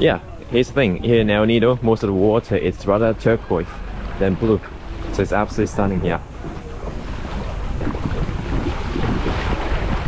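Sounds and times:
small waves washing on sand: 0.0s - 10.0s
wind buffeting microphone: 0.0s - 10.0s.

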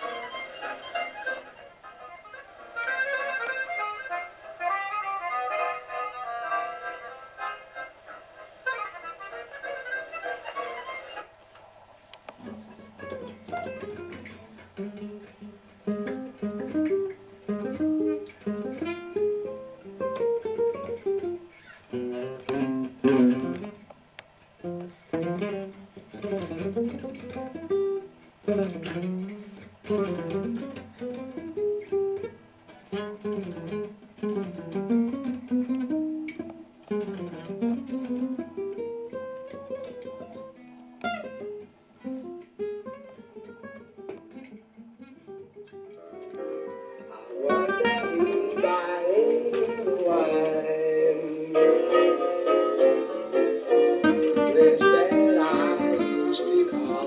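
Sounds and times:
acoustic guitar melodic runs: 0.0s - 57.0s.

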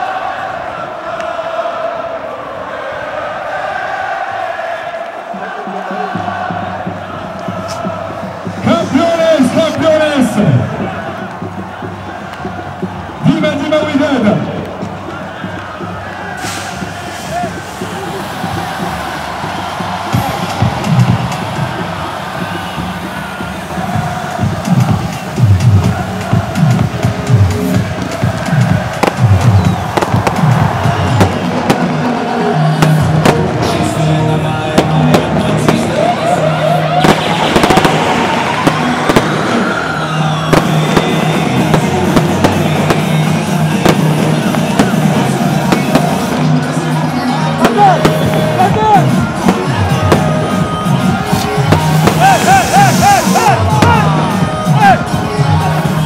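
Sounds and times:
crowd noise: 0.0s - 56.0s
loud music: 0.0s - 56.0s
fireworks popping and crackling: 28.9s - 32.2s, 37.0s - 46.6s, 47.6s - 54.2s.

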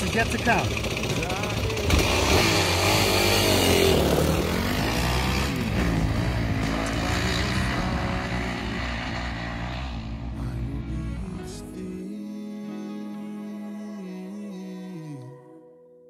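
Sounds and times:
dirt bike engine revving: 0.0s - 10.6s.

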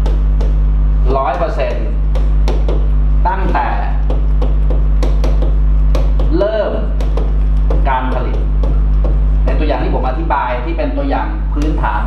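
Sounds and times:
pen tapping on screen: 0.0s - 0.6s, 2.1s - 6.4s, 7.0s - 9.2s
steady low hum: 0.0s - 12.0s.

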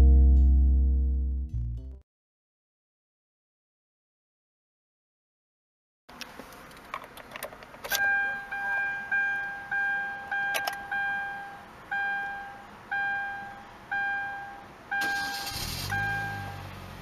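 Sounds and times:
car door warning chime: 7.9s - 16.6s
car engine idling: 14.9s - 17.0s
car starter cranking: 15.0s - 16.5s.

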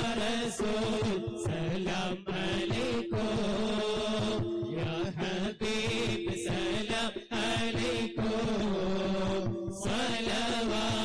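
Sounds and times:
group chanting in unison: 0.0s - 6.8s.

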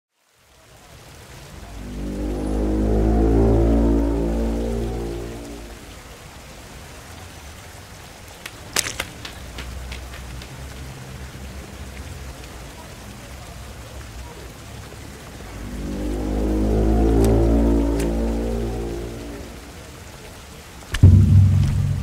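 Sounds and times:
hiss of falling water: 0.2s - 22.0s
deep sustained chord: 1.4s - 6.1s, 15.0s - 20.1s, 21.0s - 22.0s
low cinematic impact: 1.5s - 6.0s, 15.3s - 19.9s, 21.0s - 22.0s.

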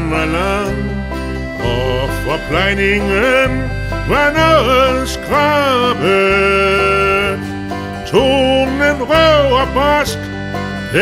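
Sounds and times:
plucked acoustic guitar and bass: 0.0s - 11.0s
long held sung note: 1.6s - 7.3s.

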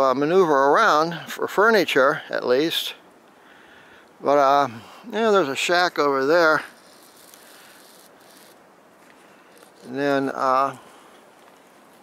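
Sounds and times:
faint rustling: 5.6s - 12.0s.

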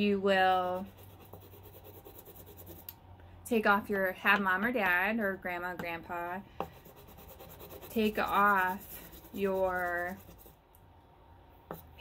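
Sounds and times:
chalk scratching on paper: 0.5s - 2.9s, 6.6s - 10.6s.

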